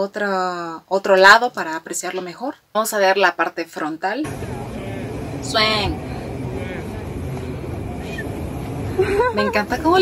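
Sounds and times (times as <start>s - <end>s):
public space rumble: 4.2s - 10.0s
faint distant voices: 4.3s - 9.9s.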